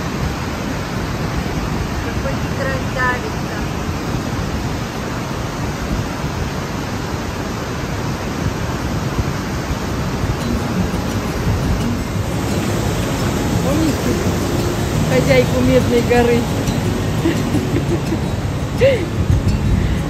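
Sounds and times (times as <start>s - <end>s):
river rushing through rock gorge: 0.0s - 20.0s.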